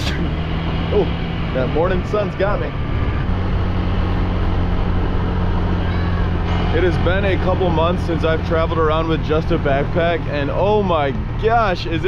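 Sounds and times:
motor scooter engine: 0:00.0 - 0:12.0.

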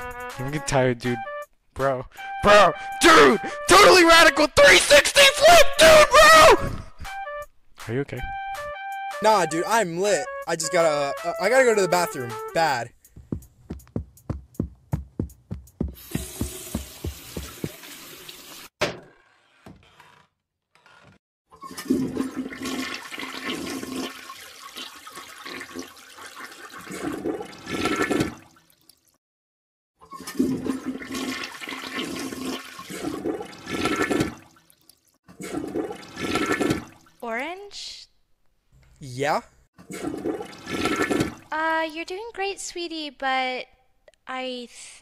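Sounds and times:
toilet flushing: 0:16.0 - 0:18.7, 0:21.6 - 0:28.5, 0:30.1 - 0:34.5, 0:35.3 - 0:37.1, 0:39.8 - 0:41.5.

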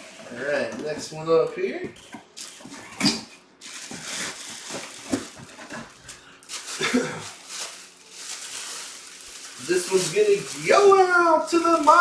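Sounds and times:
plastic bag rustling: 0:03.6 - 0:12.0.

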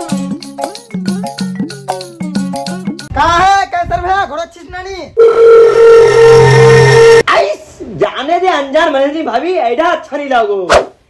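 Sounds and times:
electronic beep tone: 0:05.2 - 0:07.2.

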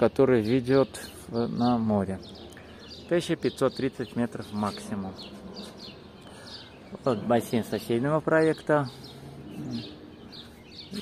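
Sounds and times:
faint outdoor background noise: 0:00.0 - 0:11.0
small birds chirping: 0:00.0 - 0:11.0.

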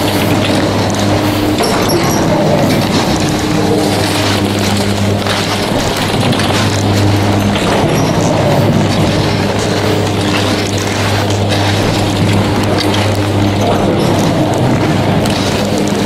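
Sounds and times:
chairlift chairs clicking and rattling: 0:00.0 - 0:16.0
low machinery hum: 0:00.0 - 0:16.0.

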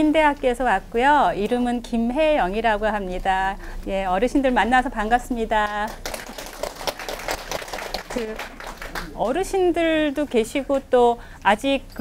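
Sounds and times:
audience clapping: 0:05.6 - 0:09.4.

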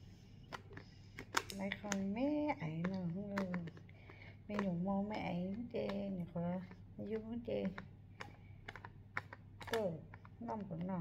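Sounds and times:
fingers tapping plastic bottle: 0:00.5 - 0:11.0.

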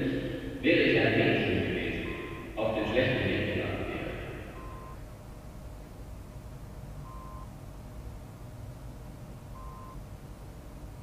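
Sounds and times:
steady low hum: 0:00.0 - 0:11.0
short electronic beeps: 0:02.0 - 0:02.6, 0:04.6 - 0:05.0, 0:07.1 - 0:07.5, 0:09.6 - 0:10.0.

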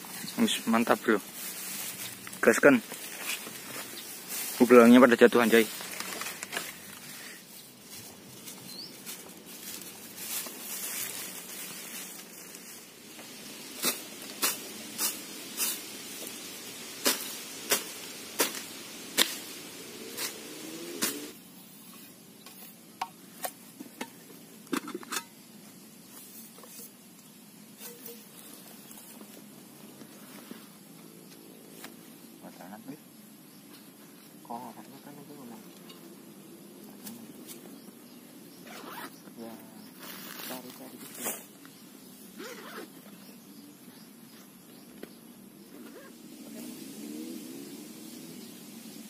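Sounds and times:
rustling through grass: 0:00.0 - 0:24.0, 0:25.4 - 0:32.6, 0:33.5 - 0:49.0
blade chopping vegetation: 0:17.0 - 0:19.5, 0:20.1 - 0:21.4.

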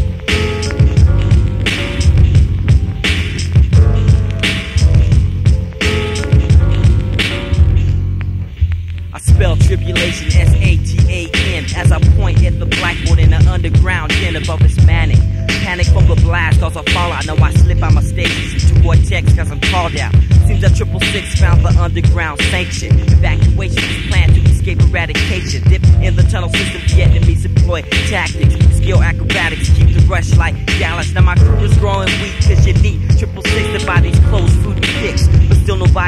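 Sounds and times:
rapping over a beat: 0:00.0 - 0:08.0, 0:08.6 - 0:36.0.

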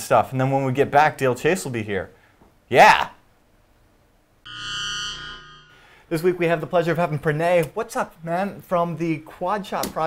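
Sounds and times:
synthesizer chord jingle: 0:04.5 - 0:05.8.

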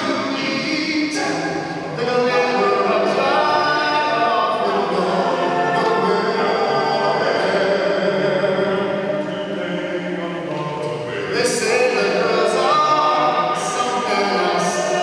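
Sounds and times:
men singing a cappella: 0:00.0 - 0:15.0.

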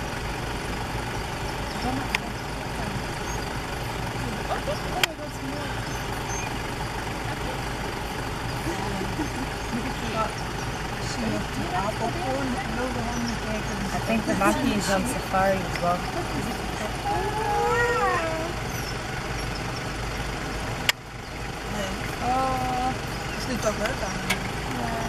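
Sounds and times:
vehicle engine idling: 0:00.0 - 0:25.0.

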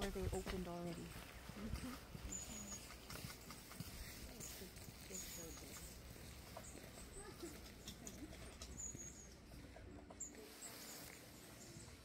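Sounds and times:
high-pitched bird calls: 0:01.9 - 0:03.0, 0:04.4 - 0:09.6.

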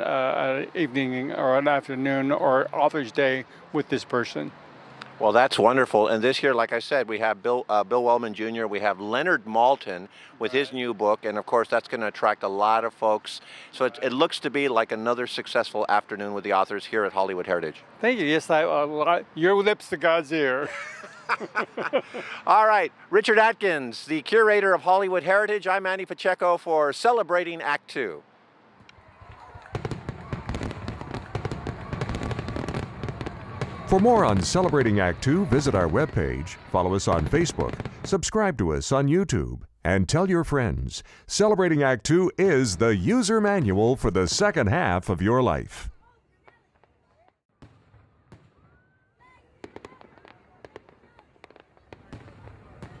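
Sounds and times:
fireworks crackling and popping: 0:28.8 - 0:38.9, 0:49.6 - 0:53.0
low rumbling fireworks booms: 0:29.0 - 0:38.5, 0:49.6 - 0:53.0.

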